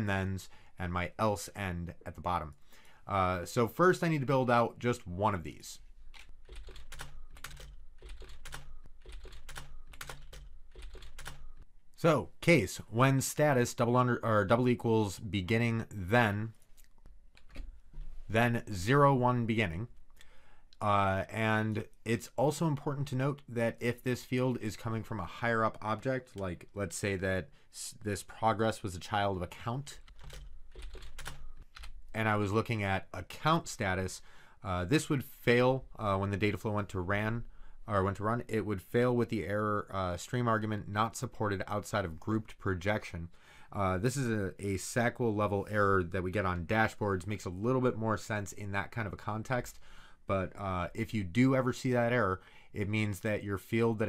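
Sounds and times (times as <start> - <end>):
computer keyboard typing: 6.1 - 11.6, 30.1 - 32.0.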